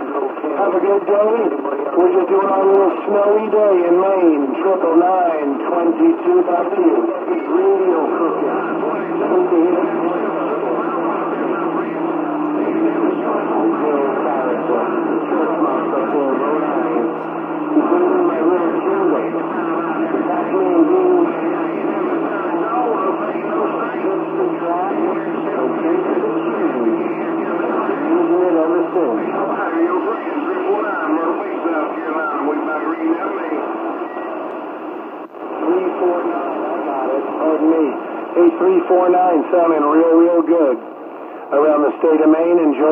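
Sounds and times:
garbled radio voices talking: 0.0 - 42.9
steady low radio tone: 0.0 - 42.9.

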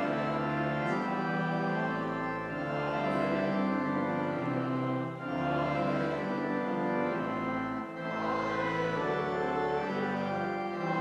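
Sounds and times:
church organ chords: 0.0 - 11.0.

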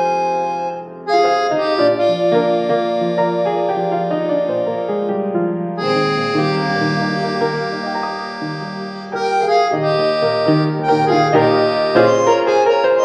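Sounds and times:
background music with held chords: 5.8 - 13.0.

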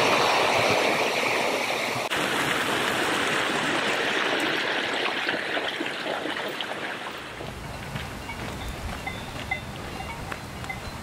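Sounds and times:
cowbells ringing: 7.4 - 11.0.

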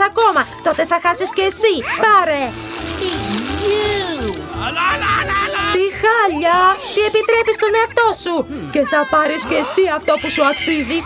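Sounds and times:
background music with steady beat: 0.0 - 11.0
hissing ink spray: 2.0 - 4.2.

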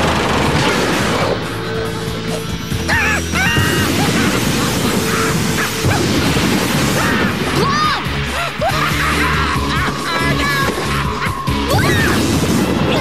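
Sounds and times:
cartoon action music: 0.0 - 13.0
crashing and clattering effects: 0.0 - 13.0.

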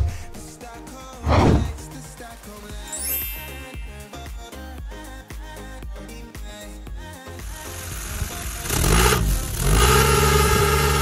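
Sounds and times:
background music: 0.0 - 11.0
car engine revving: 8.7 - 11.0.

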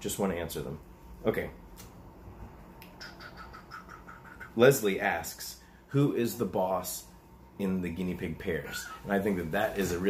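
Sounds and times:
bird chirping rapidly: 2.9 - 4.6.

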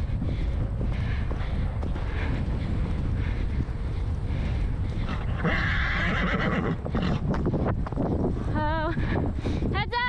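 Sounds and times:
hoofbeats on grass: 0.0 - 9.4
wind buffeting microphone: 0.0 - 10.0.

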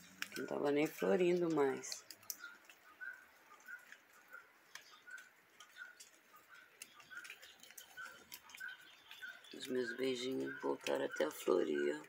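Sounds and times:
faint bird chirping: 0.0 - 12.0
faint ticks: 1.5 - 11.0.

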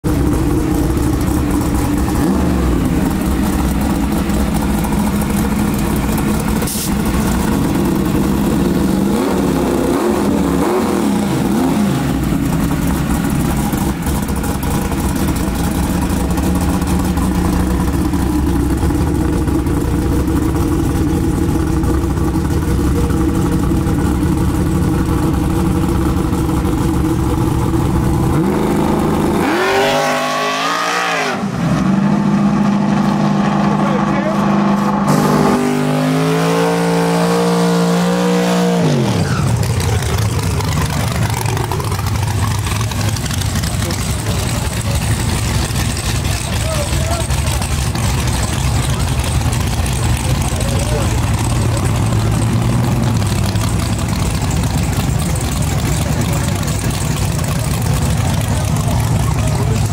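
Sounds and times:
drag car engine idling and revving: 0.0 - 59.9.

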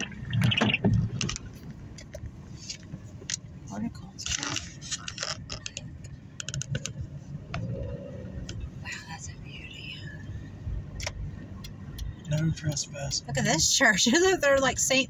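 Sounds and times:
car cabin road noise: 0.0 - 15.0
light clicks and rattles: 0.8 - 7.7.

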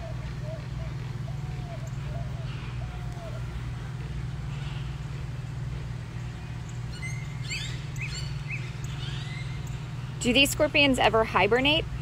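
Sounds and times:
steady low hum: 0.0 - 12.0
bird chirping: 6.2 - 9.9.

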